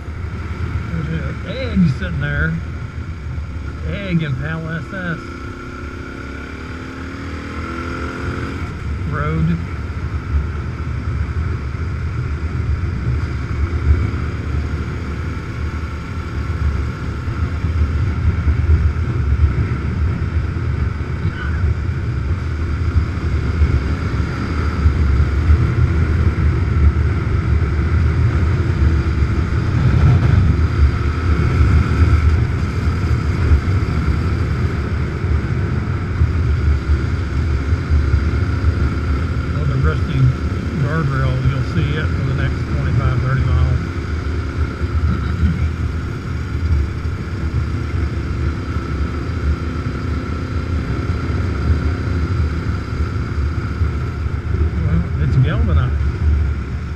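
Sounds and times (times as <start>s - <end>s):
motorcycle engine running: 0.0s - 56.9s.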